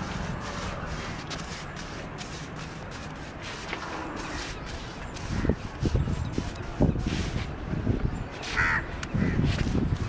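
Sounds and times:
bird cawing: 8.5s - 9.5s.

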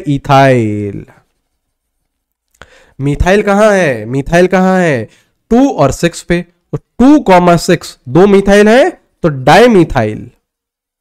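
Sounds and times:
stylus scratching on tablet: 0.6s - 2.4s.

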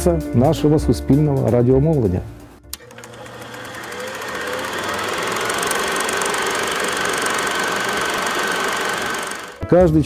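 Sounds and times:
film projector clattering: 2.8s - 9.6s.

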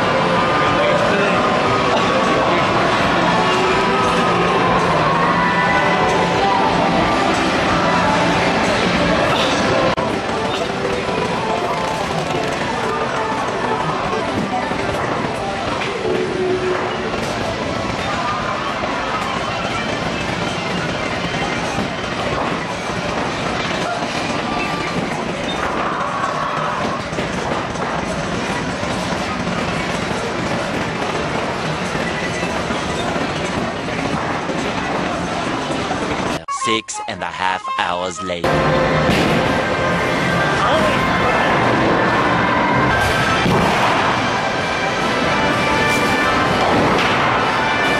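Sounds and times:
background music: 0.0s - 21.9s, 36.3s - 47.9s
indistinct chatter: 0.0s - 47.9s.

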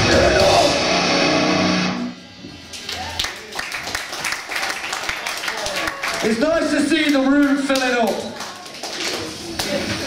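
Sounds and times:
distorted guitar chord: 0.0s - 2.3s
crowd clapping: 2.6s - 10.0s.

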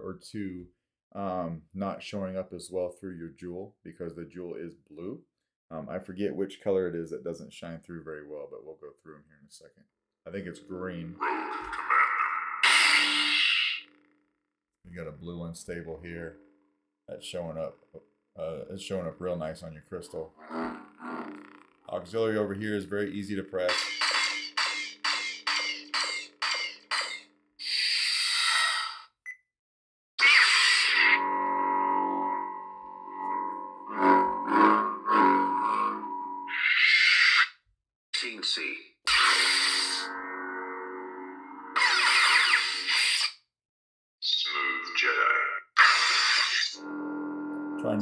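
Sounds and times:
lightsaber hum: 10.3s - 14.0s, 30.2s - 36.8s.

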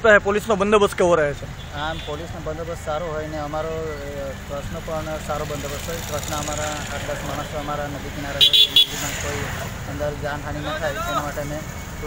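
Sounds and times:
high-pitched vehicle horn toots: 8.4s - 9.0s.

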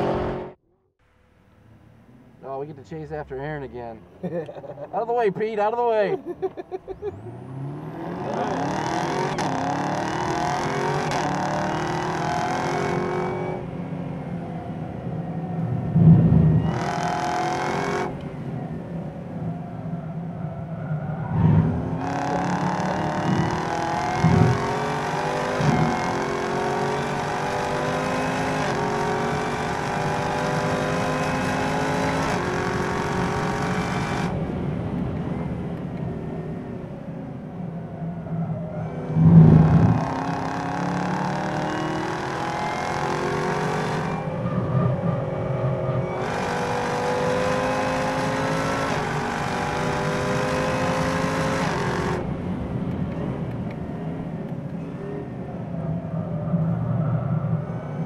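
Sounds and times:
car engine at full throttle: 0.0s - 0.6s, 6.4s - 20.5s, 21.2s - 58.0s.

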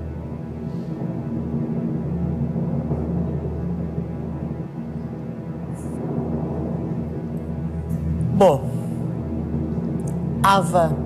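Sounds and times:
suspense music with low drone: 0.0s - 11.0s.

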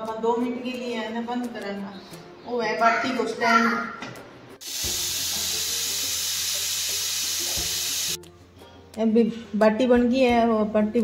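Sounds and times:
pressure cooker steam hissing: 4.6s - 8.2s.

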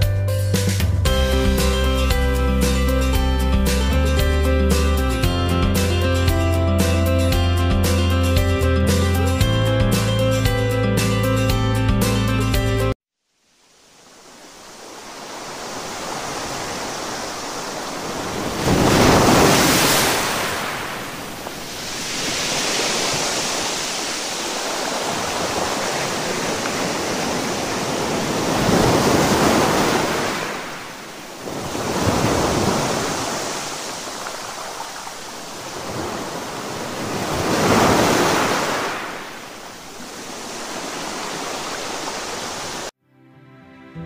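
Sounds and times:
ocean surf crashing against seawall: 14.0s - 42.9s.

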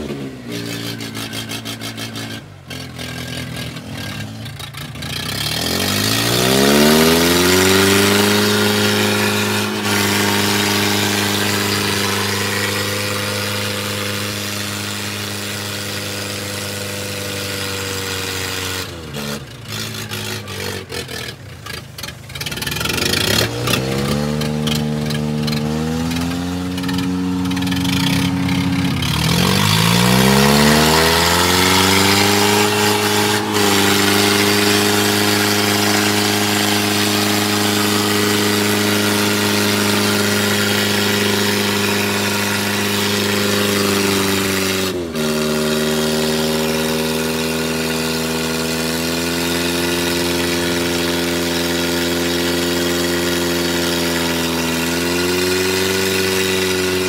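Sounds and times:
tractor diesel engine straining: 0.0s - 57.0s.

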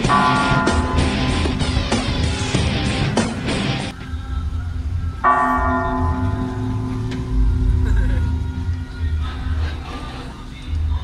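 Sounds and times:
large bell ringing: 0.0s - 3.9s, 5.2s - 8.6s.

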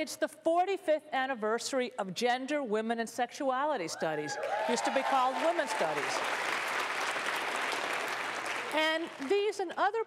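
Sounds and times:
audience applauding: 4.3s - 9.4s.

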